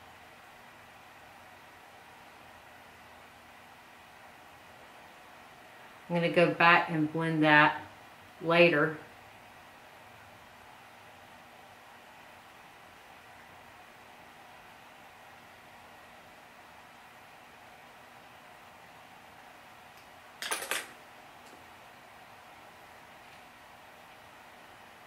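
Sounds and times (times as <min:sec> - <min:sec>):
faint room tone hiss: 0:00.0 - 0:25.0.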